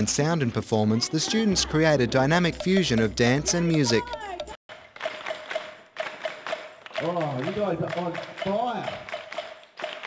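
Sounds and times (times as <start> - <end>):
rhythmic claps slaps and stomps: 2.3 - 10.0
person calling out: 3.4 - 4.5.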